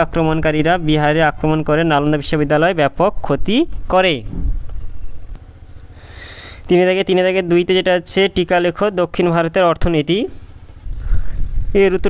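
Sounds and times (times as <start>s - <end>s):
low rumble: 3.0s - 5.9s, 10.4s - 12.0s
person speaking: 6.6s - 10.4s.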